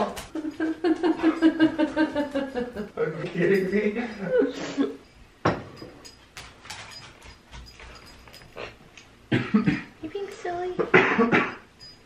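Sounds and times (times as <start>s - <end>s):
person coughing: 9.3s - 9.9s, 10.9s - 11.6s.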